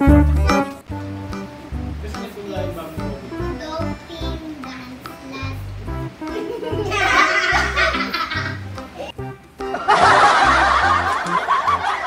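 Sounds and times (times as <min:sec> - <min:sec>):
music with bass beat: 0:00.0 - 0:02.1
loud laughter: 0:06.3 - 0:08.7, 0:09.7 - 0:12.0.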